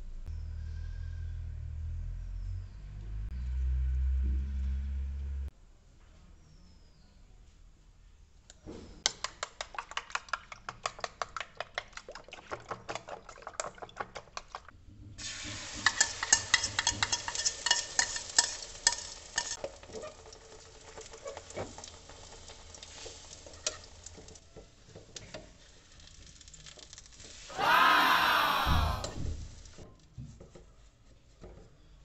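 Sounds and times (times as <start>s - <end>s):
egg sizzling in frying pan: 15.2s - 27.5s.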